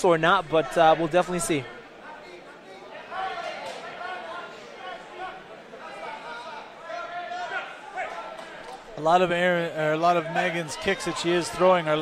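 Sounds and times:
crowd shouting: 0:02.8 - 0:08.9, 0:09.9 - 0:12.0.

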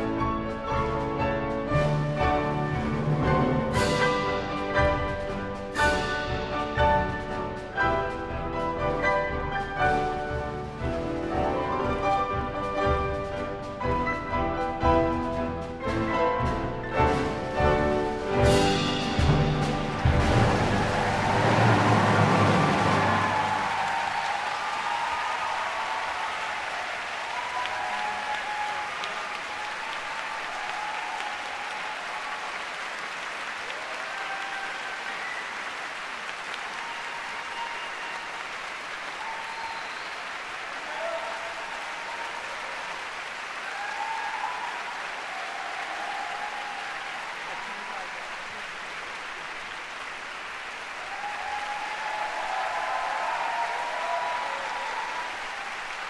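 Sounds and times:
audience applauding: 0:17.0 - 0:56.0
shouts and cheers: 0:19.4 - 0:49.0, 0:50.7 - 0:56.0.

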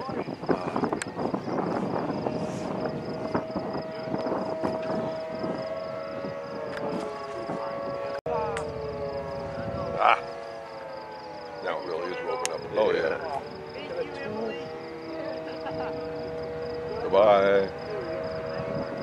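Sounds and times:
tornado warning siren wailing: 0:00.0 - 0:19.0.

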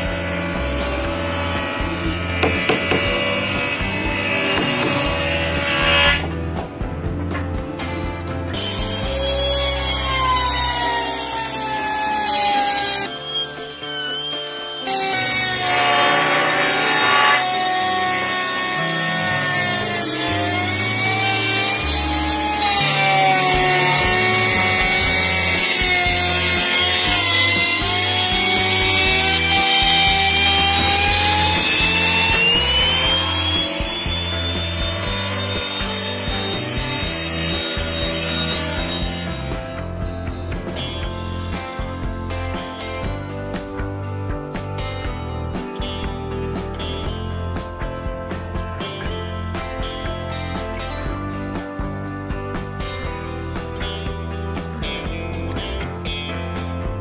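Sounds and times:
background music: 0:00.0 - 0:57.0
electric router motor whine: 0:08.6 - 0:39.8.

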